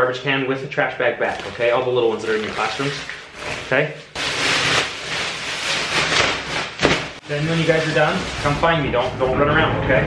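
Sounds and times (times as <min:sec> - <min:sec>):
plastic bag rustling: 0:01.2 - 0:08.8.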